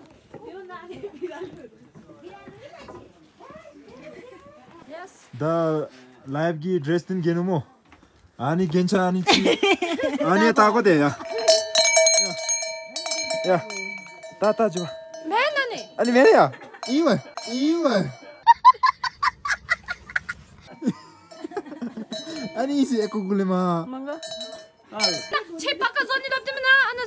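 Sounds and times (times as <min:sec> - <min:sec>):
metal bells clanking: 0:10.2 - 0:18.6, 0:20.6 - 0:25.9
person speaking: 0:13.3 - 0:18.3.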